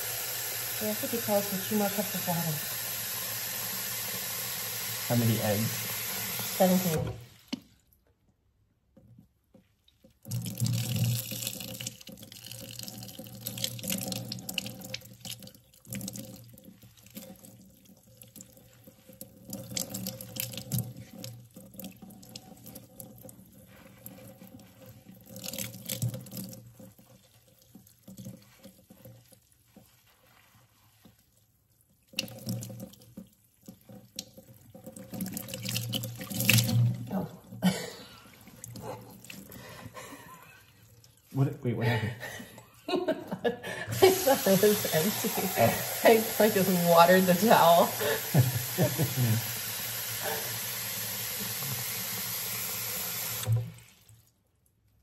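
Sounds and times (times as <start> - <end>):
water pouring and splashing: 0.0 - 8.0, 9.5 - 41.5, 43.9 - 54.6
hands rubbing wet hair: 23.5 - 26.0, 27.0 - 32.2, 44.0 - 49.2.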